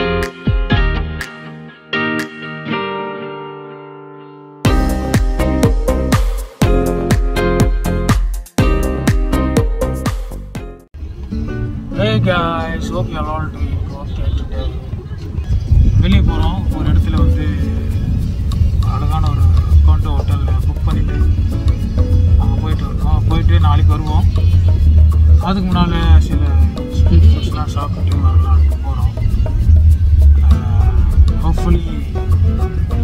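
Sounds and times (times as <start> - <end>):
music with voice: 0.0 - 13.7, 15.6 - 33.0
road noise: 8.9 - 33.0
car engine rumble: 10.9 - 33.0.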